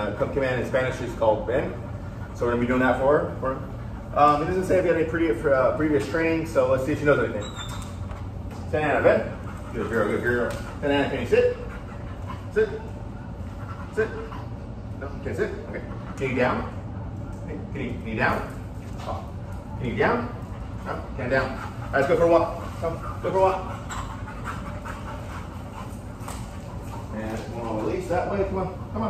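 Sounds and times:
dog panting: 0.0s - 29.0s.

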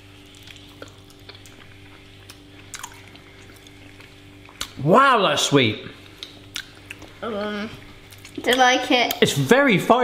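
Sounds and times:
steady low hum: 0.0s - 10.0s
wet chewing clicks: 0.3s - 4.8s, 6.1s - 7.2s, 8.1s - 9.2s.

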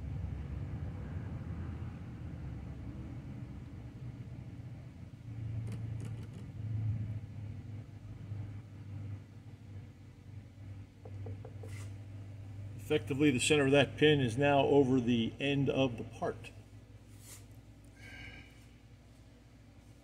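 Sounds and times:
uneven mechanical rumble: 0.0s - 20.0s.

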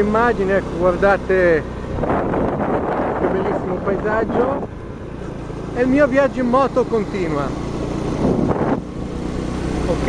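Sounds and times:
motorcycle engine running: 0.0s - 10.0s
wind noise on microphone: 1.8s - 4.8s, 8.0s - 9.0s.

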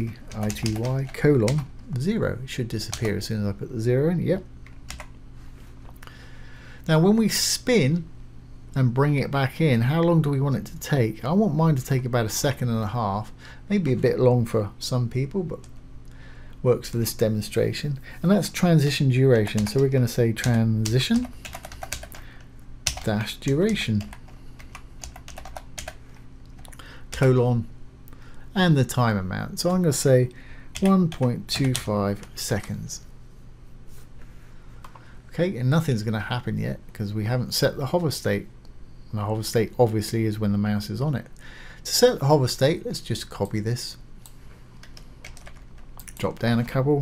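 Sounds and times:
faint low hum: 0.0s - 47.0s
computer keyboard typing: 0.3s - 1.7s, 2.9s - 3.2s, 4.7s - 5.1s, 19.5s - 22.2s, 22.8s - 26.0s, 30.7s - 32.8s, 44.8s - 46.2s
keyboard keys clicking: 22.9s - 26.0s.

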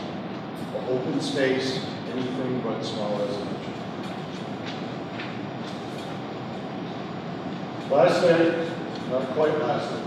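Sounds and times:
room noise hiss and rumble: 0.0s - 10.0s.

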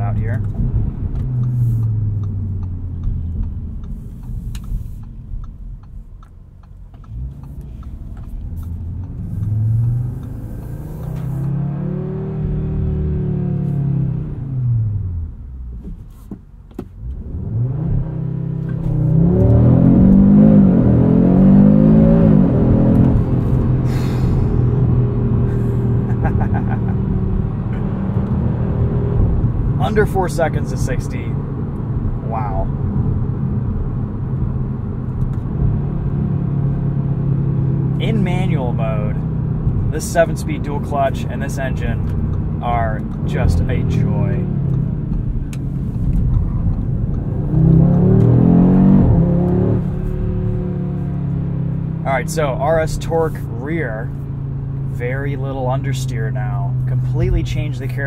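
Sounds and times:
car engine revving: 0.0s - 15.5s, 17.0s - 58.0s
full-throttle acceleration with upshifts: 0.0s - 58.0s.

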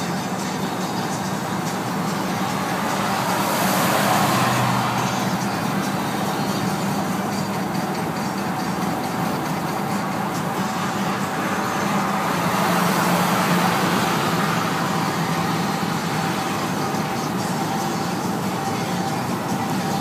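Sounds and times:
van engine and road noise: 0.0s - 20.0s.

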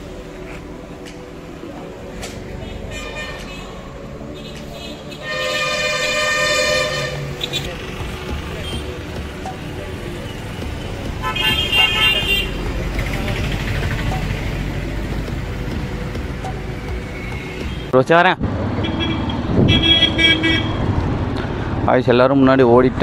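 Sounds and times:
road traffic rumble: 0.0s - 23.0s
vehicle horns honking: 2.6s - 7.9s, 11.2s - 12.6s, 18.8s - 20.9s.

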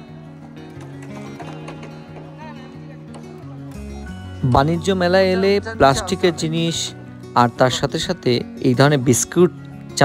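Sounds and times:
background music with bass line: 0.0s - 10.0s.

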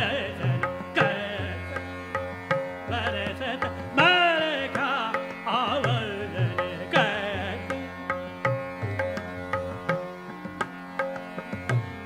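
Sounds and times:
tabla strokes: 2.1s - 12.0s.

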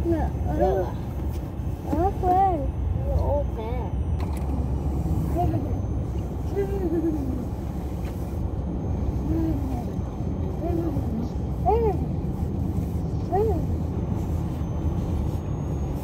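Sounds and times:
car cabin rumble: 0.0s - 16.0s
voices: 0.0s - 16.0s.

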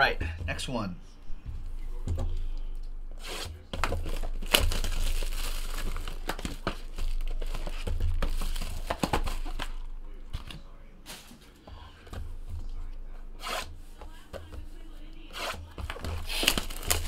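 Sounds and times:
plastic wrap crinkling and tearing: 3.2s - 10.2s, 15.9s - 17.0s.

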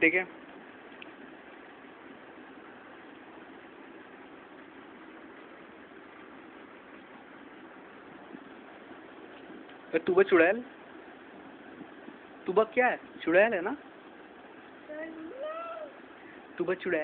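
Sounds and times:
room hiss: 0.0s - 17.0s.

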